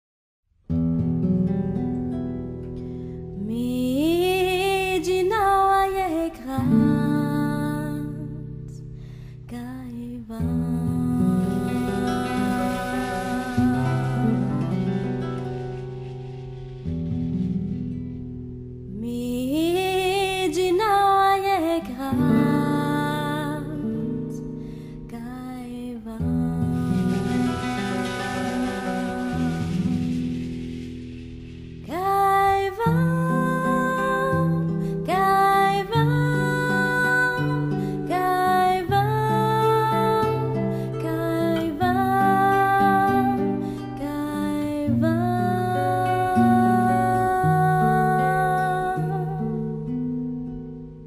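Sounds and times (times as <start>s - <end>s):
person singing: 3.4s - 8.4s, 9.5s - 15.8s, 18.9s - 24.4s, 25.1s - 30.7s, 31.8s - 49.8s.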